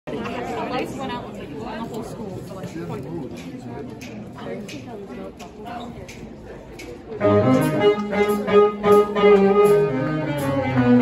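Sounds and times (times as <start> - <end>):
chatter of many people: 0.1 - 11.0.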